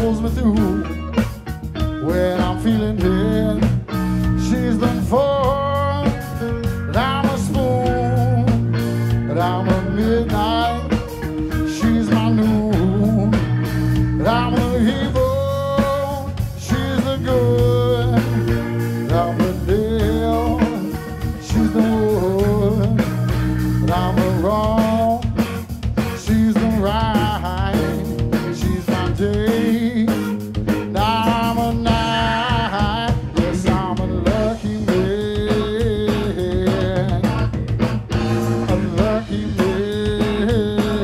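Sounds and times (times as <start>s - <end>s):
bass guitar: 0.0s - 41.0s
drums: 0.0s - 41.0s
electric guitar lead: 0.0s - 41.0s.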